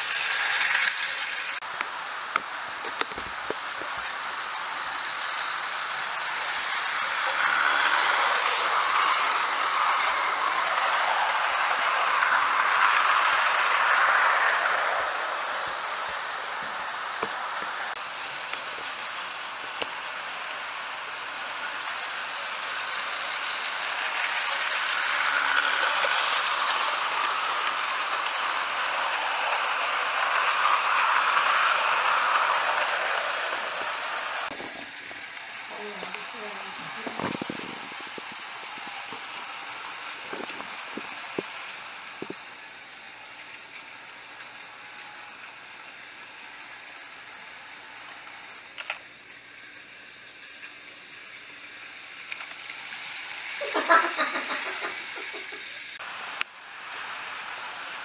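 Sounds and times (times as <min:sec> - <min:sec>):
model train rumble and motor whir: 0:00.0 - 0:58.0.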